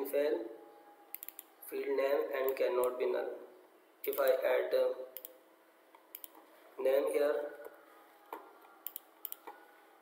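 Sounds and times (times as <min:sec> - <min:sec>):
computer keys clicking: 0:01.1 - 0:01.5, 0:05.2 - 0:05.4, 0:06.0 - 0:06.4, 0:08.8 - 0:09.6
mouse clicks: 0:01.1 - 0:01.5, 0:05.2 - 0:05.4, 0:06.0 - 0:06.4, 0:08.8 - 0:09.6.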